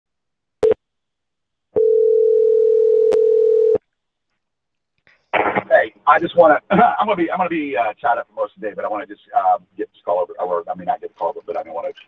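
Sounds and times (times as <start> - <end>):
steady telephone tone: 1.8 - 3.8.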